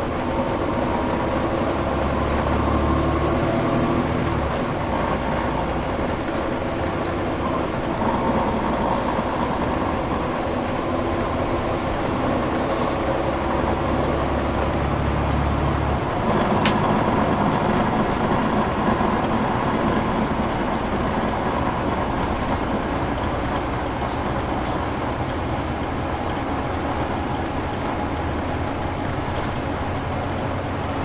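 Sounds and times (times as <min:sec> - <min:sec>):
bus diesel engine running: 0:00.0 - 0:31.0
road and tyre noise: 0:00.0 - 0:31.0.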